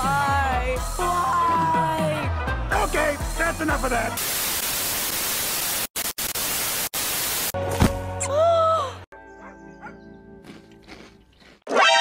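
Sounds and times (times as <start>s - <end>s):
television static hiss: 4.2s - 7.6s.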